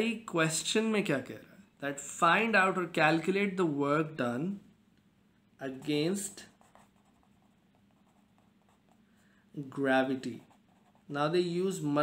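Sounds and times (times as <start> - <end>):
pen scratching on paper: 5.8 - 9.0, 10.1 - 11.2.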